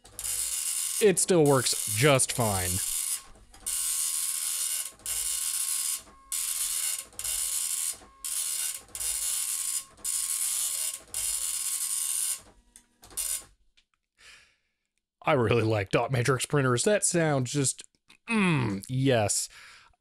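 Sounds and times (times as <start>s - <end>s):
dot matrix printer printing: 0.0s - 13.4s.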